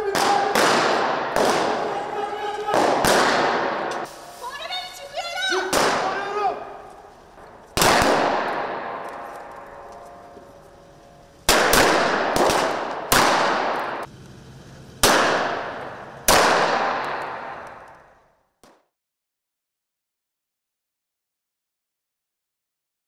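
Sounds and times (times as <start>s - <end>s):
gunshots echoing: 0.0s - 4.1s, 5.6s - 10.3s, 11.5s - 14.1s, 15.0s - 17.9s.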